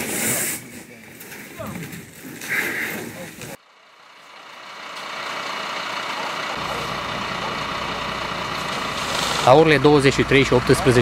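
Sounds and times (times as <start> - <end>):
deeper rumble: 3.3 - 11.0
fire truck engine idling: 3.4 - 11.0.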